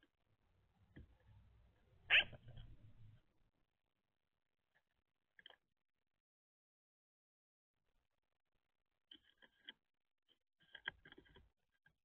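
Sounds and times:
faint low hum: 0:00.0 - 0:06.2
sharp bark-like animal call: 0:02.1 - 0:02.4.

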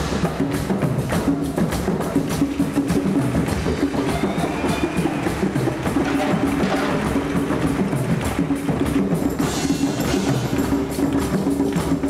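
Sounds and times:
hand percussion: 0:00.0 - 0:12.0
marimbas playing: 0:03.5 - 0:12.0.

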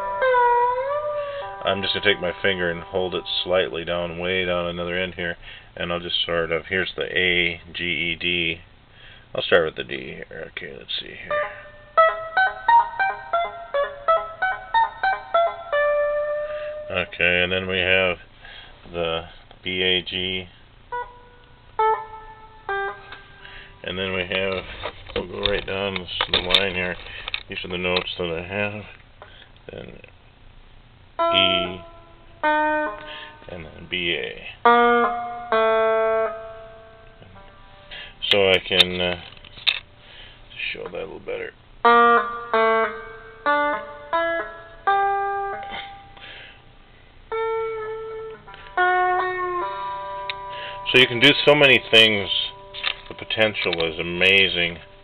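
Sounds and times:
plucked single-string notes: 0:00.0 - 0:05.0, 0:20.9 - 0:28.2, 0:31.2 - 0:39.8, 0:41.8 - 0:46.4, 0:47.3 - 0:55.0.

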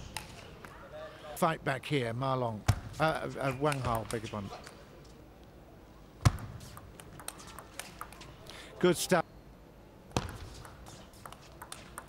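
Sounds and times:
table tennis ball clicks: 0:06.3 - 0:08.4, 0:10.1 - 0:12.0.

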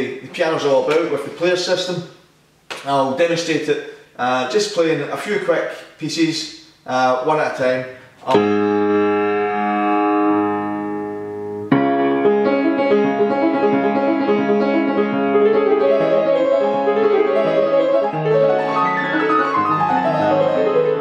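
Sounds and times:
player piano playing: 0:08.3 - 0:21.0.

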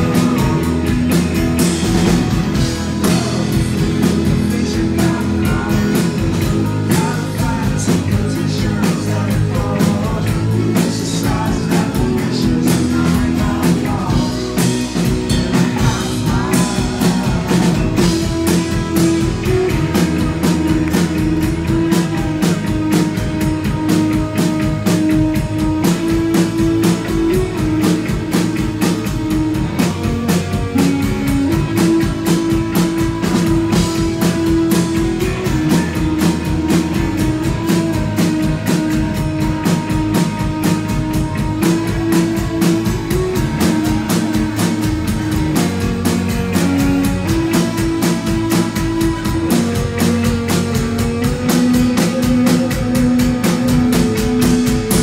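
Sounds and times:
live rock band playing: 0:00.0 - 0:55.0.

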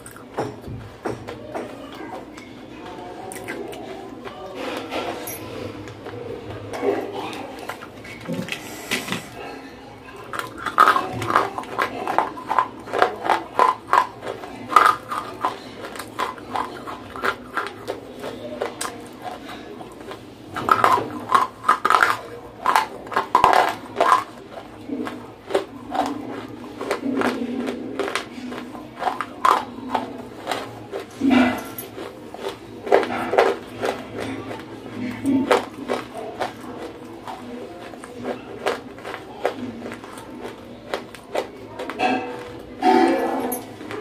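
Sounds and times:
clay being chewed: 0:00.0 - 0:44.0.

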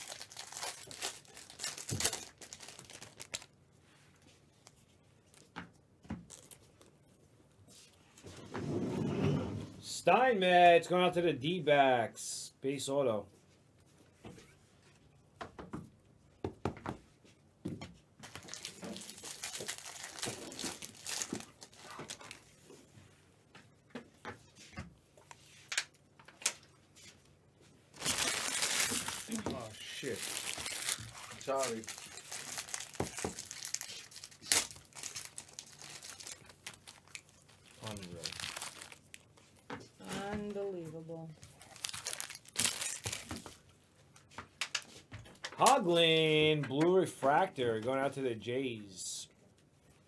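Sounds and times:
card wrappers crinkling and tearing: 0:00.0 - 0:03.6, 0:06.2 - 0:06.9, 0:18.2 - 0:22.6, 0:27.9 - 0:39.7, 0:41.4 - 0:43.6.

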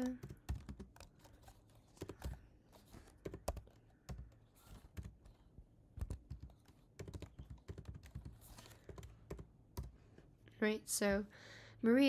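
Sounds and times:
computer keyboard typing: 0:00.0 - 0:05.4, 0:06.0 - 0:10.0.

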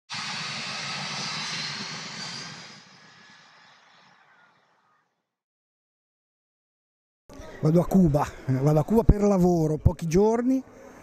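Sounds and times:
airplane engine flying by: 0:00.1 - 0:04.5.

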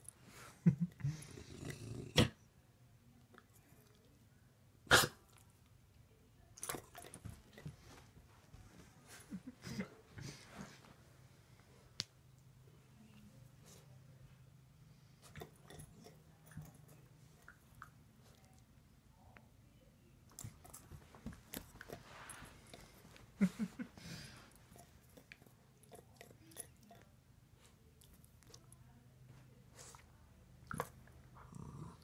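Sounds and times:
faint low hum: 0:00.0 - 0:32.0.

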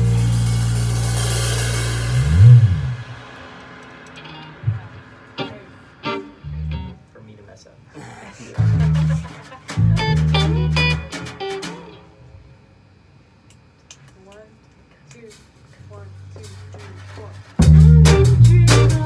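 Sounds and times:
jazz combo playing: 0:00.0 - 0:03.5, 0:04.2 - 0:07.1, 0:08.6 - 0:12.2, 0:17.6 - 0:19.0
bass slide: 0:00.0 - 0:07.0, 0:08.6 - 0:11.1, 0:17.6 - 0:19.0
cymbal wash: 0:00.0 - 0:07.0.

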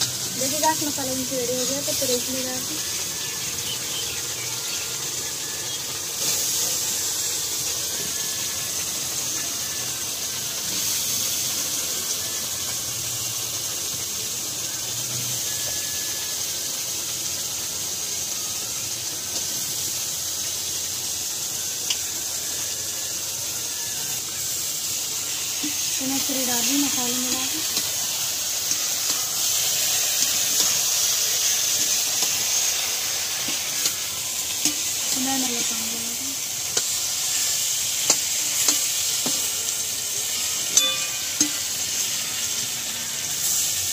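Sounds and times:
vegetables sizzling in hot oil: 0:00.0 - 0:43.9.

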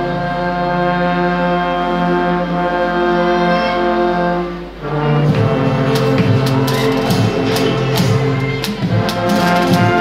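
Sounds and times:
brass band sustained chord: 0:00.0 - 0:10.0.

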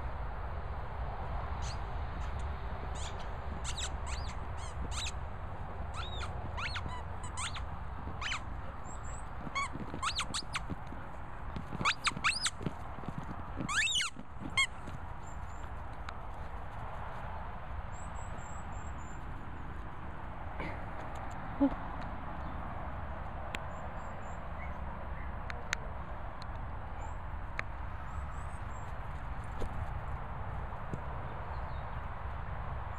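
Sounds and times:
rubber squeaky toy squeaks: 0:03.0 - 0:05.2, 0:05.9 - 0:10.8, 0:11.7 - 0:12.6, 0:13.6 - 0:14.8.

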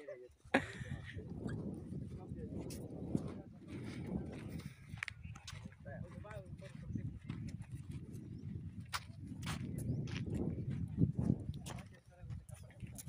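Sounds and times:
wind rumble on microphone: 0:00.4 - 0:13.0
footsteps on stony ground: 0:00.9 - 0:13.0.

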